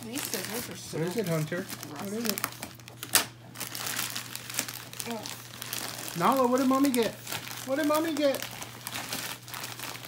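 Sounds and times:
plastic mailer bag crinkling: 0.0s - 10.0s.

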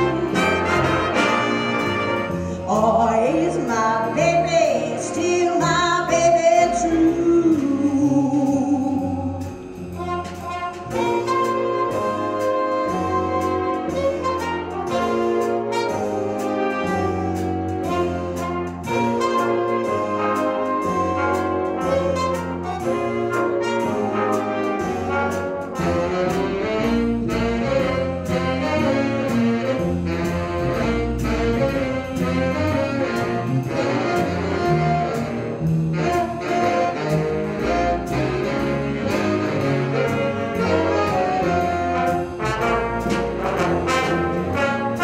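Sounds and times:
drums swing beat: 0.0s - 45.0s
saxophones and brass: 0.0s - 45.0s
upright bass: 0.0s - 45.0s.

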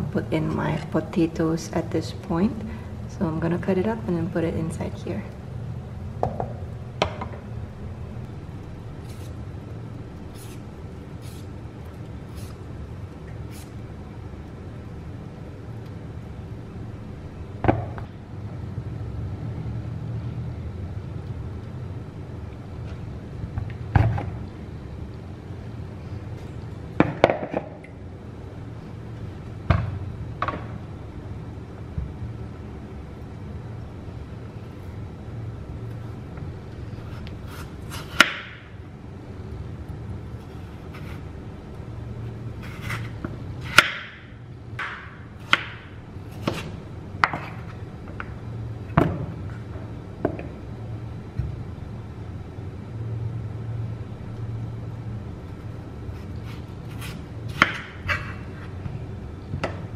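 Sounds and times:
low hum: 0.0s - 27.1s
knife chopping on wooden board: 46.4s - 47.5s.

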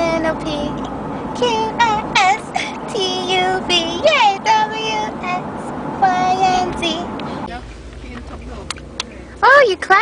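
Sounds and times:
car ride noise: 0.0s - 10.0s.

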